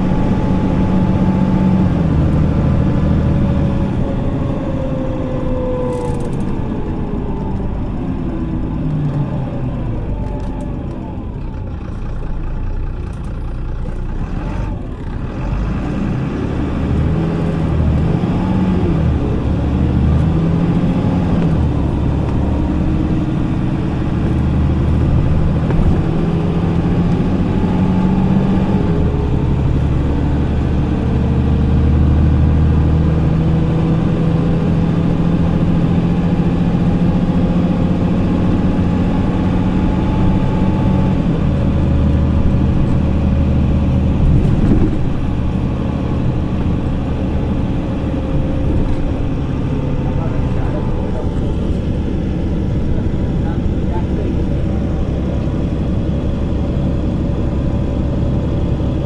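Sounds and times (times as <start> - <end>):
bus diesel engine: 0.0 - 59.0.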